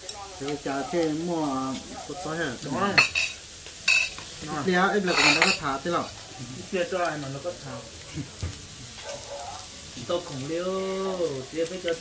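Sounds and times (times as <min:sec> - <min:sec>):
man talking: 0:00.1 - 0:03.1, 0:04.4 - 0:07.9, 0:09.4 - 0:12.0.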